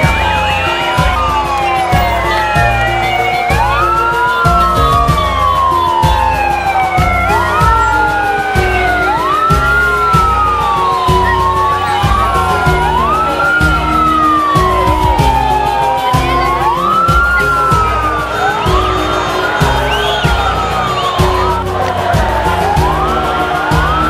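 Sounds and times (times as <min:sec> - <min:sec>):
music with heavy beat: 0:00.0 - 0:24.0
police sirens wailing: 0:00.0 - 0:24.0.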